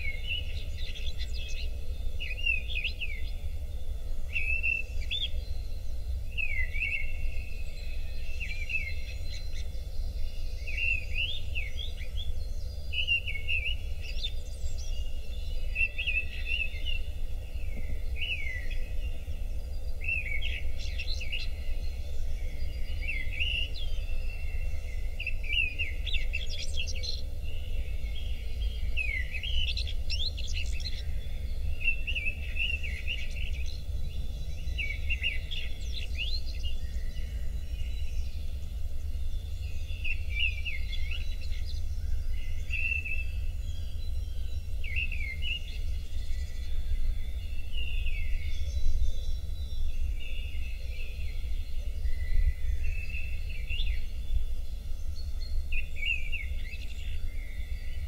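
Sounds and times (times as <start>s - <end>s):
birds chirping and whistling: 0.0s - 58.0s
steady low rumble: 0.0s - 58.0s.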